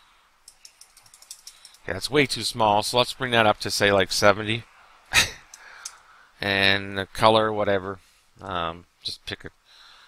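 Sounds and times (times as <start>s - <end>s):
rapid small clicks: 0.4s - 1.9s.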